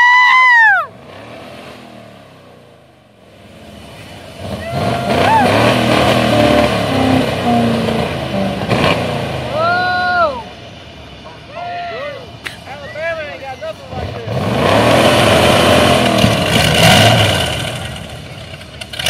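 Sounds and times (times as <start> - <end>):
people whooping and shouting: 0.0 - 0.9, 4.5 - 5.8, 9.5 - 10.5, 11.5 - 13.2
engine revving with crackling exhaust: 0.3 - 11.3, 13.7 - 19.0
exhaust bang: 4.5 - 9.6.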